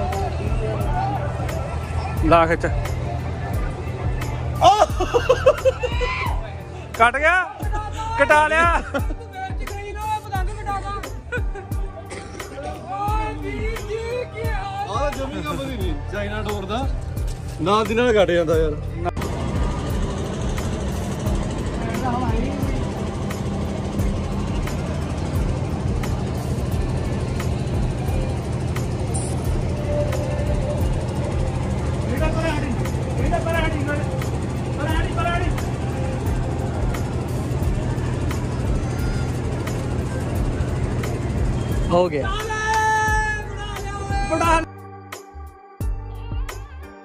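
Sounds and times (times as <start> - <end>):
low mechanical drone: 10.4 - 44.7.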